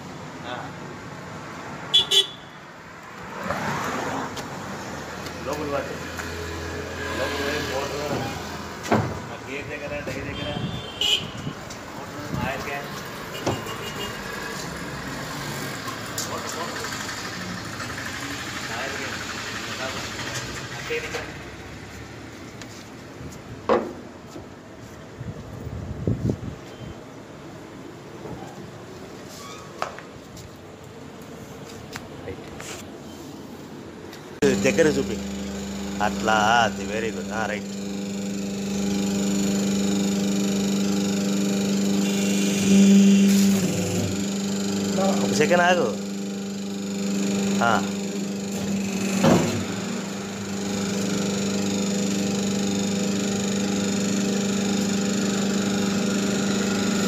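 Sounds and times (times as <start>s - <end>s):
road vehicles running: 0.0s - 26.6s, 30.0s - 40.2s
sharp knocks: 8.8s - 9.3s
people talking: 9.3s - 10.7s, 12.1s - 12.9s, 16.2s - 17.0s, 34.4s - 35.2s, 36.0s - 37.7s, 45.0s - 46.0s, 47.6s - 47.9s.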